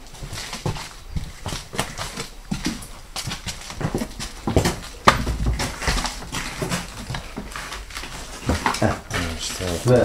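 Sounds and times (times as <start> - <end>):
footsteps and scuffs on floor: 0.0 - 10.0.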